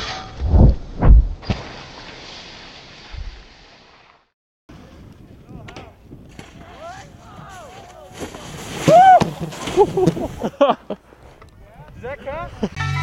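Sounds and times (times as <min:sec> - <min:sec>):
wind noise: 0:00.4 - 0:01.5, 0:04.7 - 0:07.8
people whooping and calling: 0:08.8 - 0:09.3.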